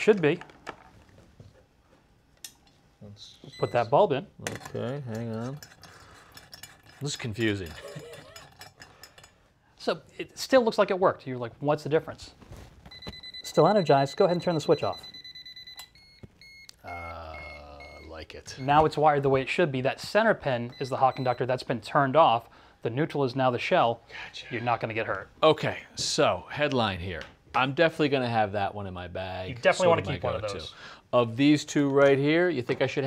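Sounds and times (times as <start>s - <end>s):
short beeps: 12.9s - 18.8s
steady high beep: 12.9s - 18.8s, 20.7s - 21.5s.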